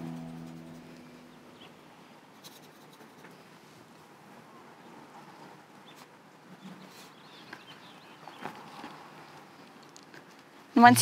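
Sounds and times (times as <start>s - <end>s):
acoustic guitar music: 0.0s - 1.6s, 10.8s - 11.0s.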